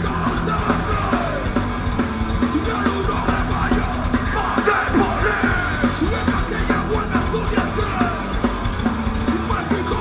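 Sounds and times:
drums: 0.0 - 10.0
electric guitar: 0.0 - 10.0.

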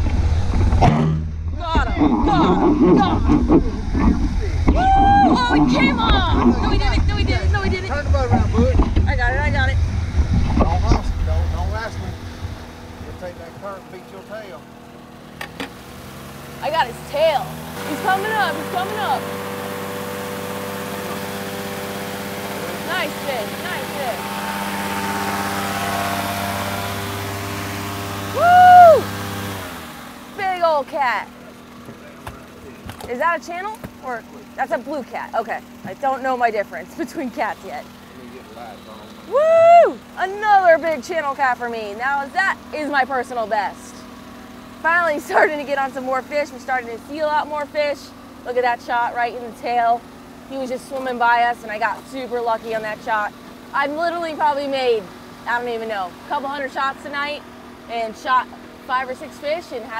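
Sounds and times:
boat motor humming: 0.0 - 59.9
people's voices: 1.6 - 9.8
whooping cheer: 4.7 - 5.6, 28.3 - 29.1, 39.2 - 40.1.

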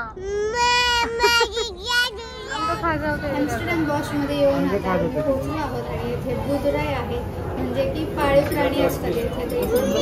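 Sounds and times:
toddler whining cry: 0.0 - 3.2.

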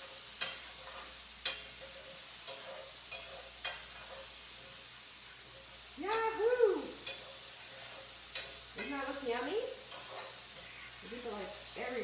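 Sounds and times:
mushrooms sizzling in a skillet: 0.0 - 12.0
utensil scraping a pan: 0.0 - 12.0.

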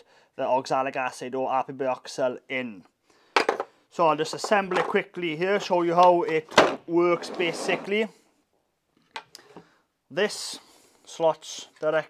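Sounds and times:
faint plastic scrape: 7.1 - 8.1.

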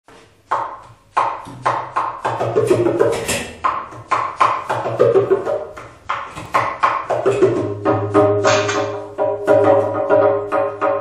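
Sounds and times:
djembe slaps: 0.4 - 11.0.

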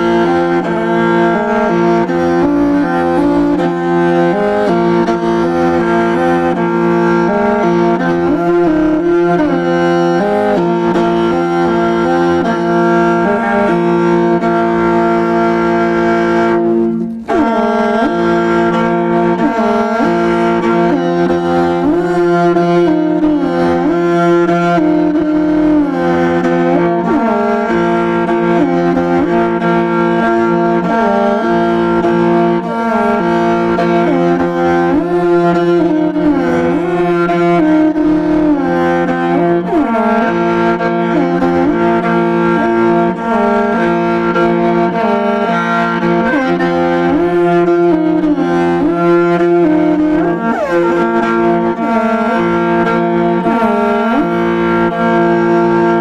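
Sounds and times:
bowed fiddle drone and melody: 0.0 - 56.0.

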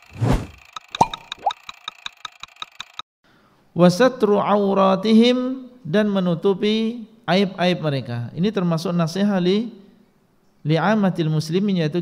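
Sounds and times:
short rising blips: 0.0 - 1.6.

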